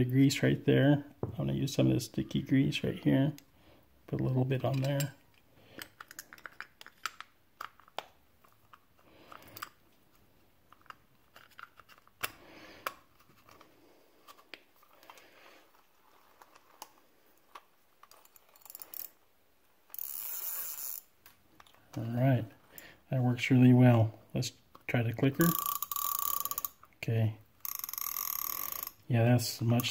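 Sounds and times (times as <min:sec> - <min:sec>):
fishing reel parts clicking: 0:18.0 - 0:19.2, 0:19.9 - 0:21.1, 0:25.4 - 0:26.9, 0:27.6 - 0:29.0.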